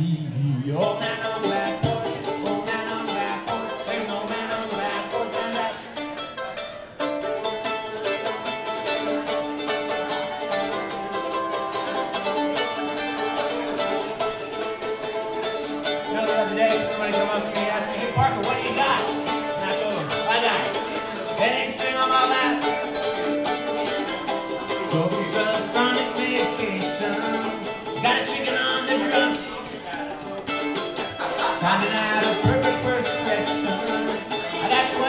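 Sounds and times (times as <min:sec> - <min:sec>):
mandolin strummed fast: 0:00.8 - 0:35.0.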